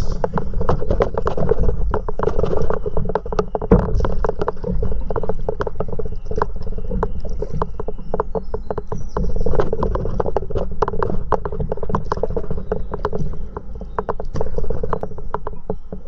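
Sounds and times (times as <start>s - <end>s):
steady low rumble: 0.0s - 6.2s
water slapping against paddleboard: 0.0s - 16.0s.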